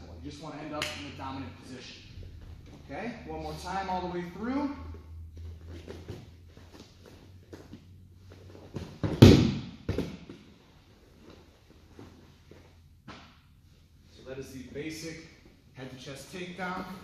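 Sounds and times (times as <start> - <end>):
body landing on padded mat: 8.7 - 10.4.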